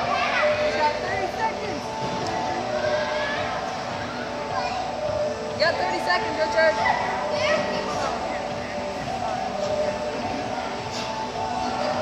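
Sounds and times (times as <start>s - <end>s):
children calling and talking: 0.0s - 12.0s
crowd babble: 0.0s - 12.0s.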